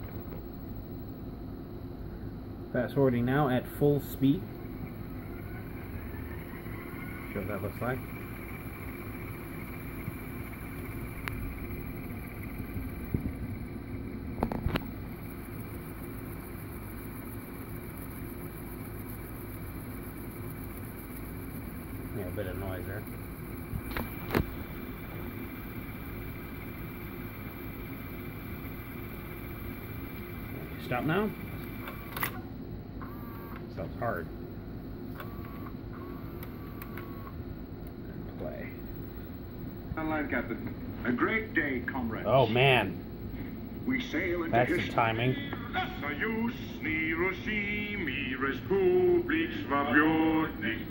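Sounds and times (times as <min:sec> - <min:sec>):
thin high whine: 0:00.0 - 0:50.9
tape reels whirring: 0:03.1 - 0:34.2, 0:35.1 - 0:37.4, 0:43.8 - 0:50.9
sharp mechanical clicks: 0:08.0 - 0:13.3.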